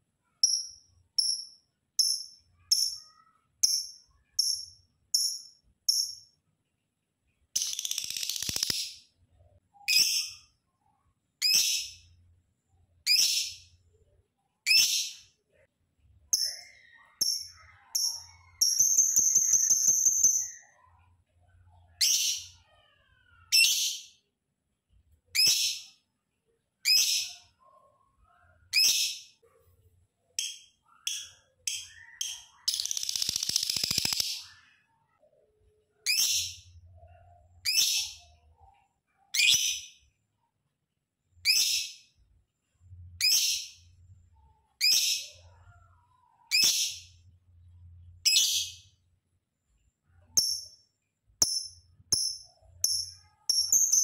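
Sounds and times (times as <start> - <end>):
bird chirping high-pitched: 0.3 - 6.4, 7.5 - 10.6, 11.4 - 12.2, 13.0 - 13.8, 14.6 - 15.4, 16.3 - 21.1, 21.7 - 24.2, 25.3 - 26.0, 26.8 - 27.6, 28.6 - 29.4, 30.4 - 38.7, 39.3 - 40.0, 41.4 - 42.2, 43.2 - 47.2, 48.2 - 49.0, 50.3 - 50.8, 51.4 - 54.0
bird trill: 16.3 - 21.0, 51.4 - 54.0
harsh chattering bird call: 31.1 - 34.7.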